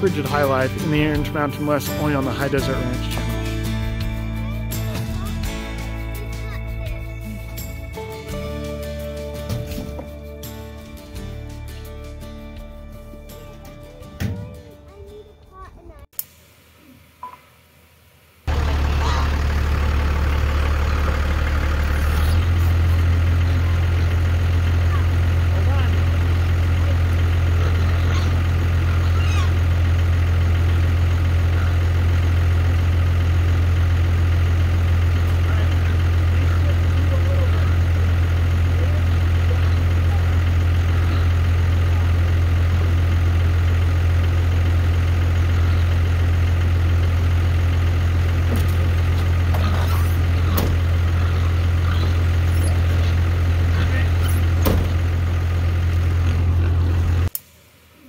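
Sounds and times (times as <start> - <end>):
motor humming: 18.5 - 57.4.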